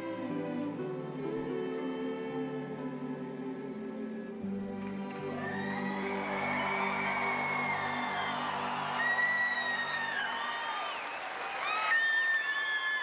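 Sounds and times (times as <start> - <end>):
audience applauding and cheering: 4.6 - 13.0
shrill whistles: 5.4 - 13.0.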